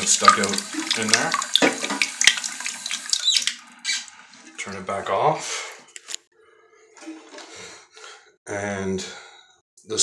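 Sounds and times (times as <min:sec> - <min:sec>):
handling noises in tank: 0:07.0 - 0:07.7.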